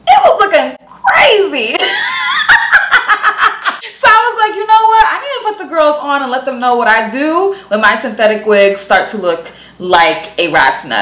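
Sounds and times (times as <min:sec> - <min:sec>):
woman laughing: 0:01.8 - 0:04.0.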